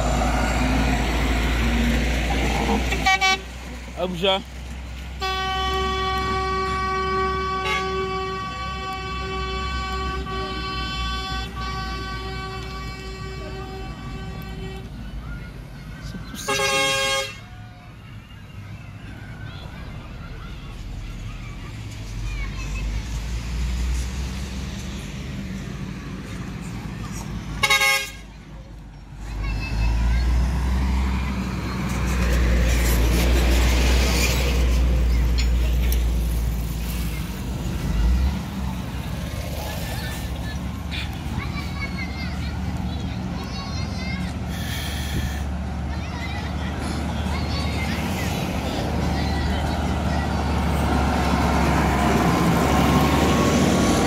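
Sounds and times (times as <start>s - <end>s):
dump truck engine rumble passing: 0.0s - 54.0s
vehicle horn steady note: 5.2s - 14.9s, 27.6s - 28.2s.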